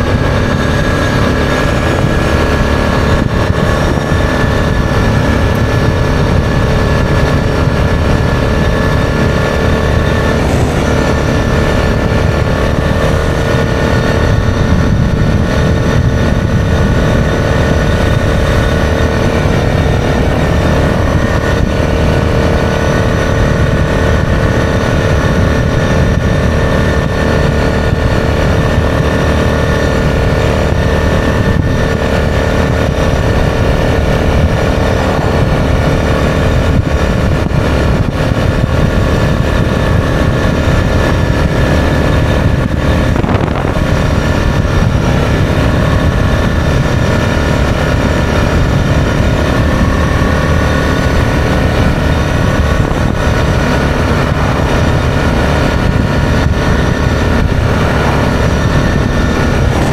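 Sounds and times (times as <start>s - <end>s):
atv engine running: 0.0s - 59.9s
wind rumble on microphone: 0.0s - 59.9s.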